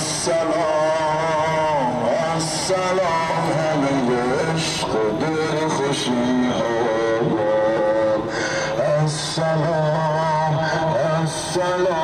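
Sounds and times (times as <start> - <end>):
man chanting a lament over loudspeakers: 0.0 - 12.0.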